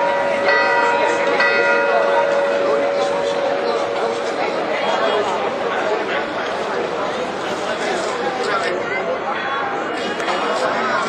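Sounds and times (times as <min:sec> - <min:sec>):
church bell hum: 0:00.0 - 0:06.4
crowd chatter: 0:00.0 - 0:11.0.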